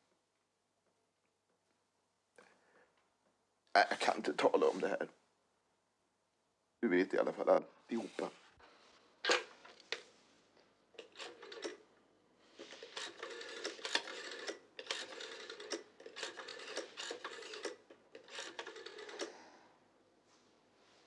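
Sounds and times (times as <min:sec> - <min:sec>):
rotary telephone dial clicking: 0:11.0 - 0:11.8, 0:12.6 - 0:19.3.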